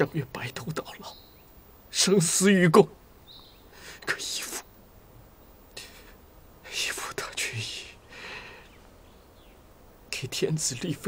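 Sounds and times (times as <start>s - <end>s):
man whispering: 0.0s - 1.2s, 3.8s - 4.8s, 5.7s - 8.8s, 10.1s - 11.0s.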